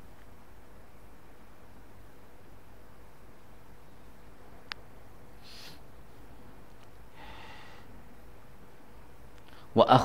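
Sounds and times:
low room hum: 0.0 - 10.0
man sniffing: 5.4 - 5.8.

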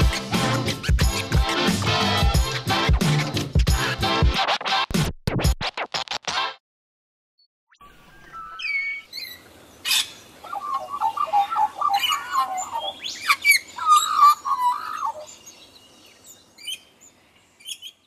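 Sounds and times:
birds chirping and calling: 0.1 - 3.3, 7.8 - 18.0.

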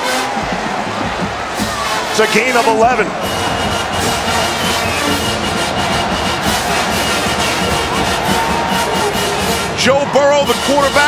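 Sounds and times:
music playing: 0.0 - 11.0
stadium crowd noise: 0.0 - 11.0.

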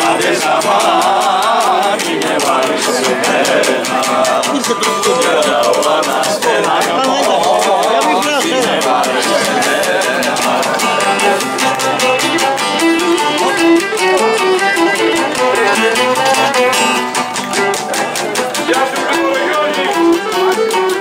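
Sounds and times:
lutes strumming fast rhythm: 0.0 - 21.0
bowed lyra melody: 8.2 - 21.0.

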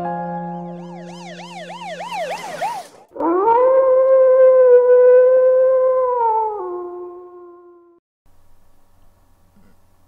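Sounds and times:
eerie warbling tone: 0.4 - 3.9
wolf-like howl: 3.2 - 8.0.

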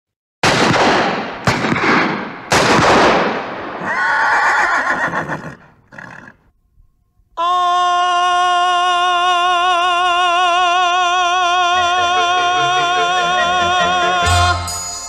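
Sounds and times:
echoing gunshots: 0.4 - 3.8
horse whinnying: 3.8 - 6.5
held musical note: 11.6 - 15.0.

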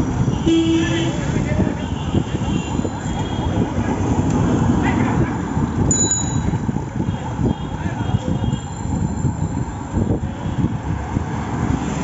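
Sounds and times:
rickshaw ride and road rumble: 0.0 - 12.0.

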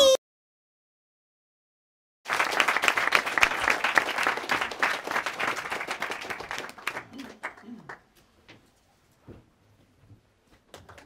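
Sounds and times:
audience applauding: 2.3 - 8.1.

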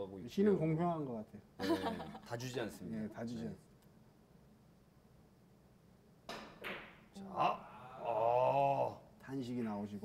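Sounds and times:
cue striking billiard ball: 6.3 - 7.0.

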